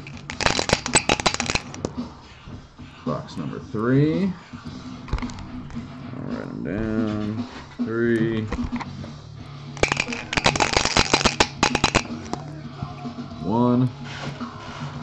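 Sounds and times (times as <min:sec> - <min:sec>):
packaging clicking and crackling: 0:00.0 - 0:01.8, 0:09.8 - 0:12.4
background music with singing: 0:00.1 - 0:15.0.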